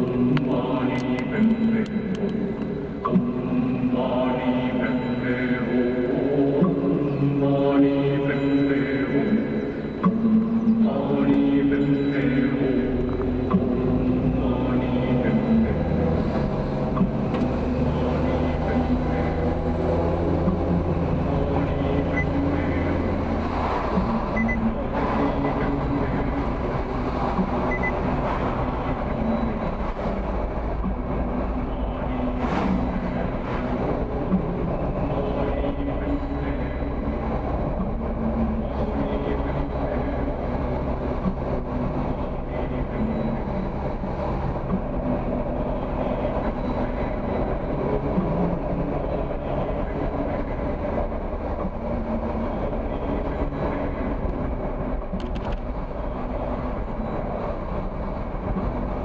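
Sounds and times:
car engine humming: 0.0s - 59.0s
tyres rumbling on road: 0.0s - 59.0s.

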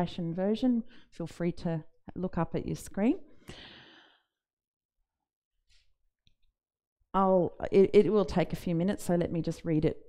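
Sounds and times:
woman speaking: 0.0s - 3.2s, 7.2s - 10.0s
breathy exhale: 3.5s - 4.3s.

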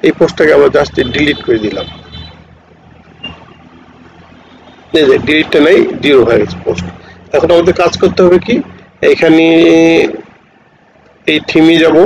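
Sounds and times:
man's voice: 5.0s - 10.3s, 11.2s - 12.0s.

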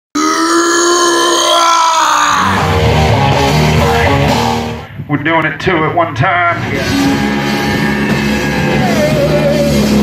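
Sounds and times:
man yelling: 8.1s - 10.0s.

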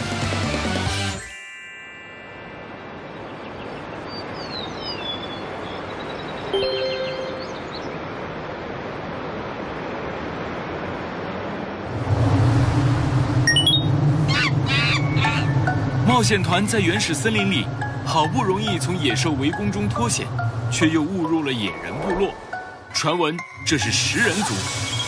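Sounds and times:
chirping sound effects: 3.0s - 8.0s, 13.5s - 17.1s, 24.1s - 25.0s
high bird-like chirps: 3.2s - 7.9s, 13.5s - 15.7s
low musical drone: 12.1s - 25.0s.

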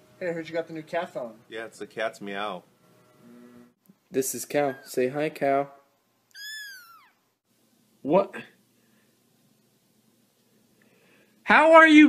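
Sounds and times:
kitten meowing: 6.3s - 7.2s.

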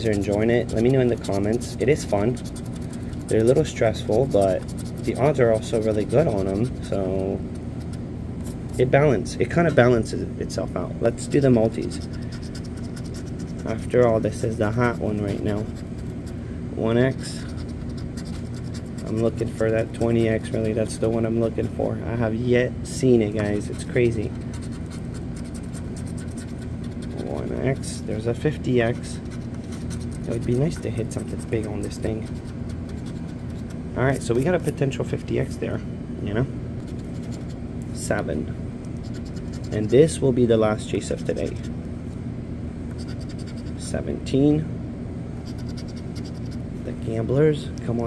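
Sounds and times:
scratching a lottery ticket: 0.0s - 9.0s, 11.2s - 21.9s, 23.4s - 34.8s, 36.8s - 37.6s, 39.0s - 40.2s, 40.9s - 41.7s, 42.9s - 43.9s, 45.4s - 46.6s.

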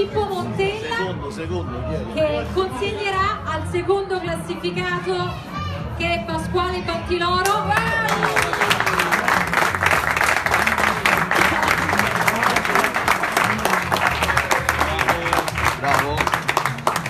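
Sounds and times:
crowd applauding: 7.4s - 17.0s.

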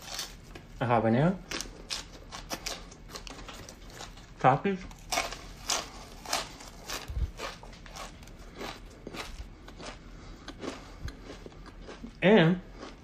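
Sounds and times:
person chewing food: 1.4s - 13.0s.

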